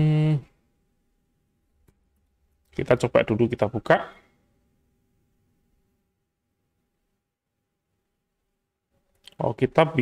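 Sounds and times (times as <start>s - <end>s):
man humming: 0.0s - 0.6s.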